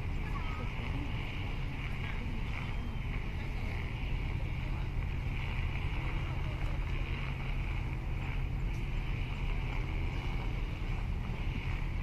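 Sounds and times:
distant boat traffic: 0.0 - 12.0
steady high hiss: 0.0 - 12.0
wind on microphone: 0.0 - 12.0.

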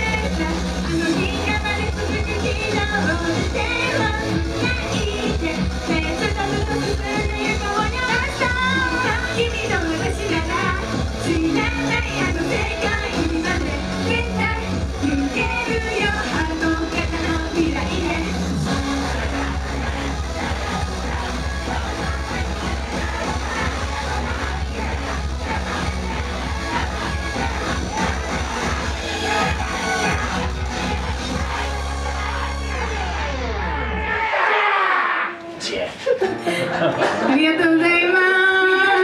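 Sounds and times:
dance beat: 0.0 - 34.0
electronic pop song over speakers: 0.0 - 39.0
group singing: 15.1 - 35.1.

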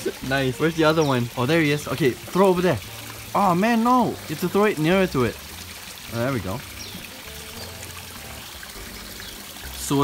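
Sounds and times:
water trickling into a pond: 0.0 - 10.0.

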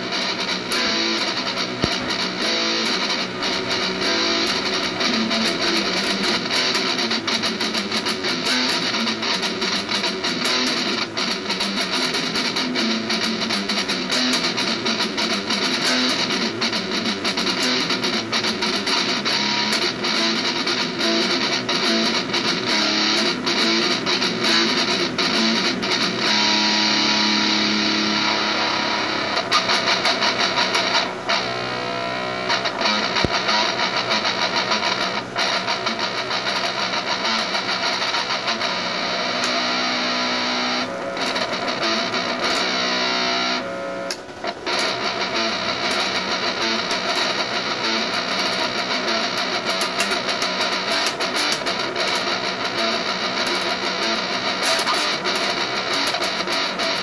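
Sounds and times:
distorted electric guitar: 0.0 - 57.0.

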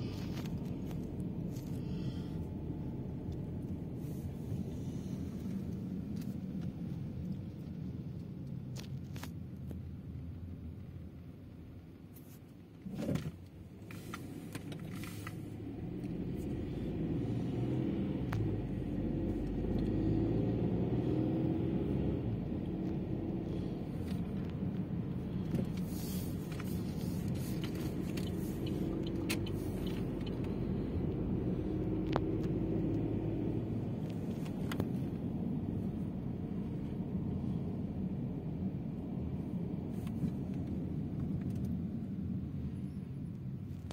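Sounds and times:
tyre and road rumble: 0.0 - 9.9, 12.8 - 43.9
car engine hum: 0.0 - 43.9.

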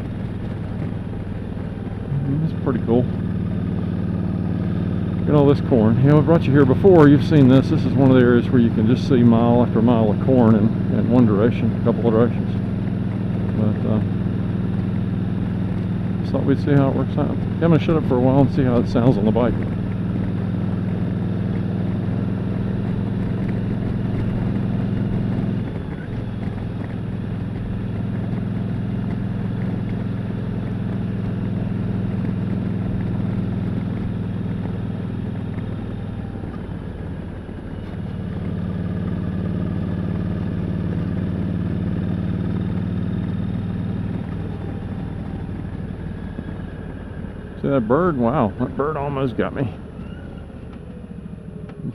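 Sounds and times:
motorcycle engine running: 0.0 - 51.9.

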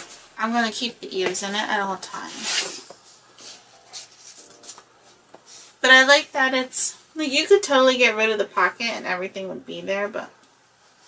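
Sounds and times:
rustling and rubbing of paper: 2.1 - 4.8.

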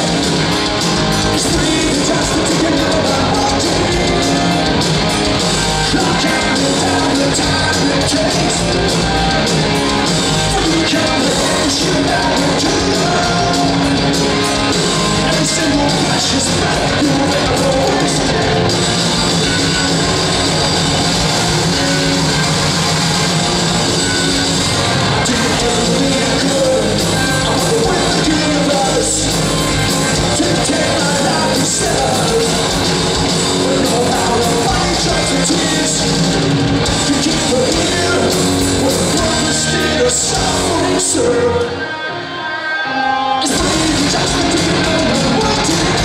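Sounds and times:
punk rock band playing live: 0.0 - 46.0.

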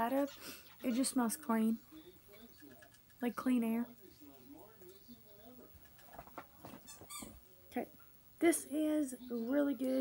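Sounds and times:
pet birds chirping: 0.0 - 1.4, 4.9 - 7.4.

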